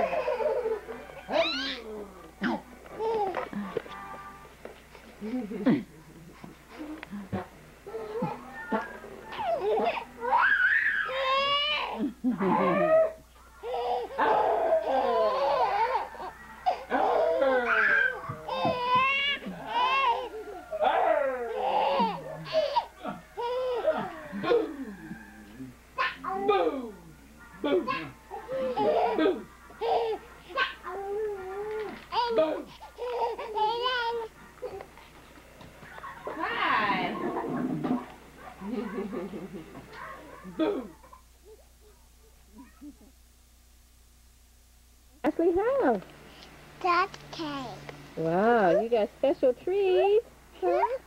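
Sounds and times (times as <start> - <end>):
baby squealing and laughing: 9.4 - 11.9.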